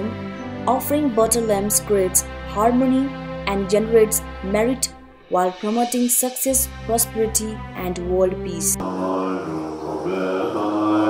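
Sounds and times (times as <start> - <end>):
men chanting: 8.7 - 11.0.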